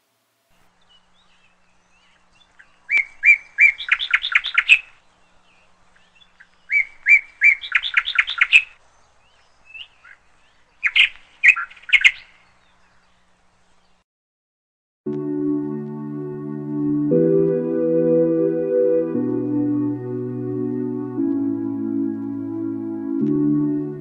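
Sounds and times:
bird singing: 0:00.6 - 0:14.0.

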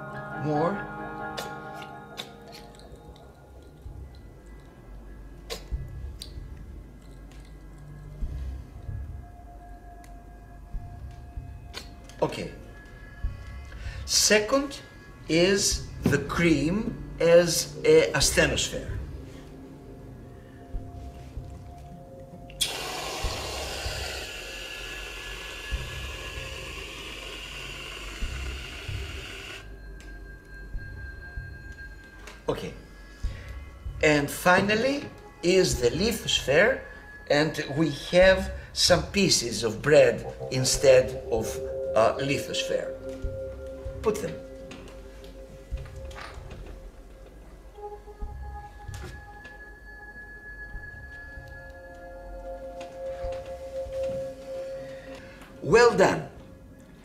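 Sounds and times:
soft bell-like music: 0:00.0 - 0:24.0, 0:28.0 - 0:57.0
aerosol whipped cream hissing: 0:22.6 - 0:29.6.

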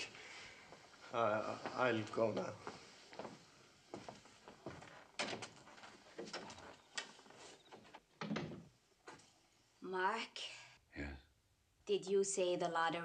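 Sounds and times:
door opening and shutting: 0:05.1 - 0:08.7.

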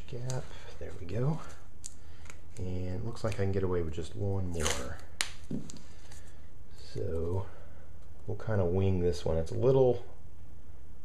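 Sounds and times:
steady low hum: 0:00.0 - 0:11.0
tape peeling off roll: 0:04.5 - 0:06.2.

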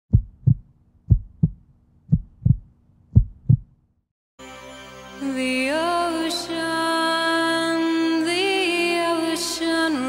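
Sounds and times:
heartbeat thumps: 0:00.1 - 0:03.8.

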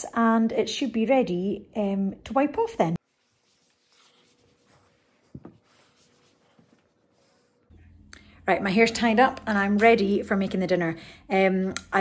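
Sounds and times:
cloth rubbing on worktop: 0:03.0 - 0:07.4.

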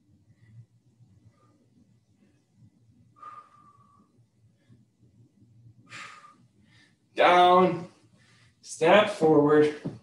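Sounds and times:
man exhaling with slight whistle: 0:03.2 - 0:04.1, 0:05.9 - 0:06.4.

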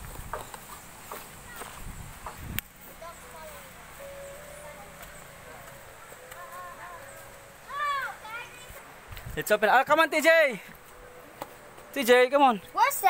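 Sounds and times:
distant voices talking: 0:02.8 - 0:13.0.

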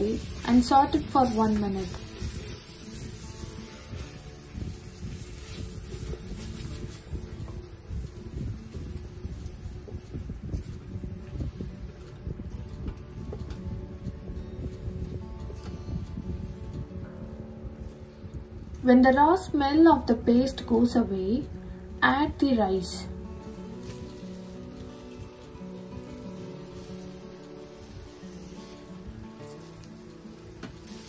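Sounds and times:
soft background music: 0:00.0 - 0:31.0.

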